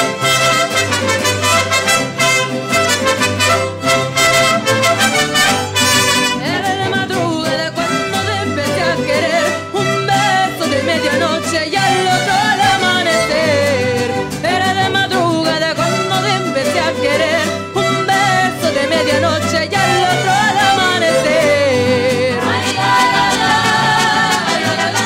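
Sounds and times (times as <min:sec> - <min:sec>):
violins and guitars playing: 0:00.0 - 0:25.0
woman singing with vibrato: 0:05.8 - 0:25.0.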